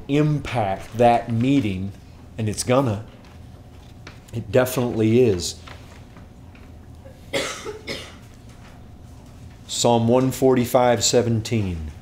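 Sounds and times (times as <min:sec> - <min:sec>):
person coughing: 0:07.0 - 0:08.3.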